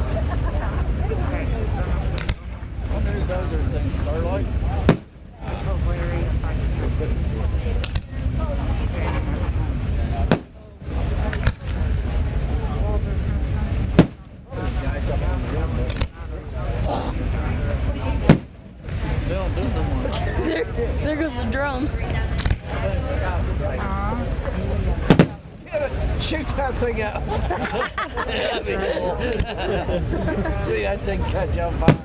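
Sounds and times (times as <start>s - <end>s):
crowd chatter: 0.0s - 32.0s
fireworks bursts: 0.0s - 32.0s
steady low rumble: 0.0s - 32.0s
fireworks launch thump: 2.0s - 3.3s, 4.4s - 5.9s, 7.7s - 16.3s, 17.2s - 20.3s, 22.1s - 22.8s, 25.0s - 26.3s, 31.7s - 32.0s.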